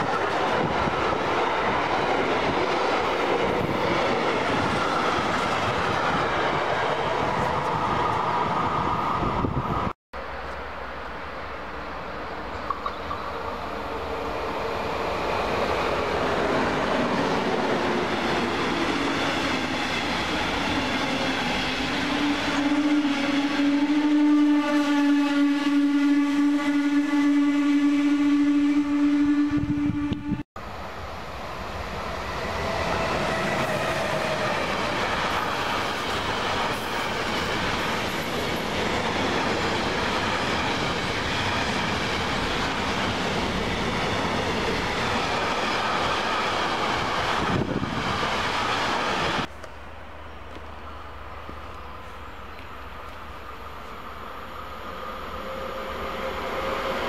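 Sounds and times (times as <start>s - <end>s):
freight train rolling by: 0.0s - 57.0s
passenger train passing: 0.0s - 57.0s.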